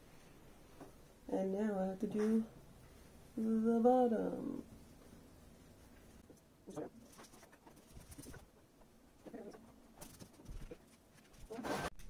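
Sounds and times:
soft vocal sounds: 1.3 - 4.8.

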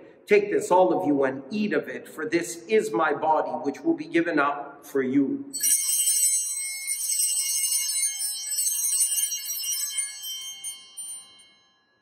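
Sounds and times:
altar bells jingling: 5.6 - 12.0.

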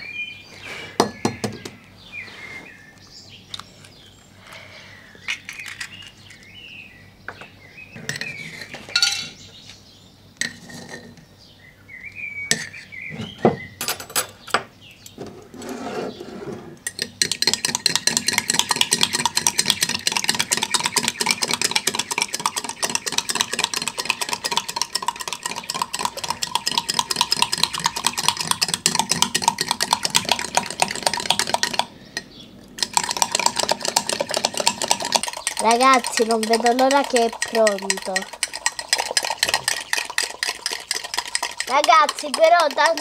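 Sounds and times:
spoon clinking against cup: 9.0 - 9.4, 32.9 - 42.9.

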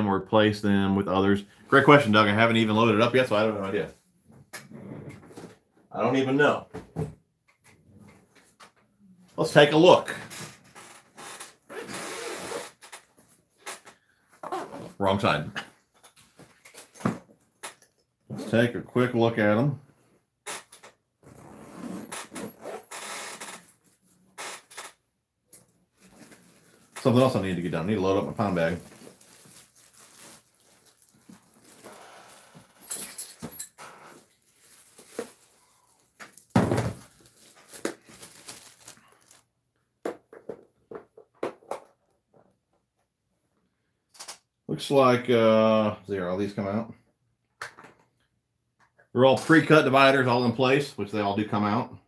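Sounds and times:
zipper pulled open: 11.2 - 13.0, 14.4 - 15.0, 20.5 - 23.8
bag rustling and knocking: 28.8 - 33.7, 34.3 - 39.4.

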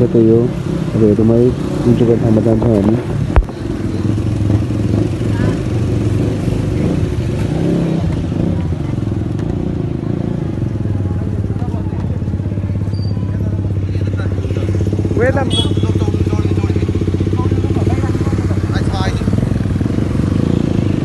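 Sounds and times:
motorcycle engine running: 0.0 - 21.0.

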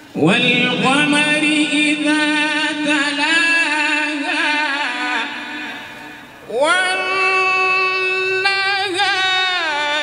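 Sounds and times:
man chanting through a microphone: 0.0 - 10.0.

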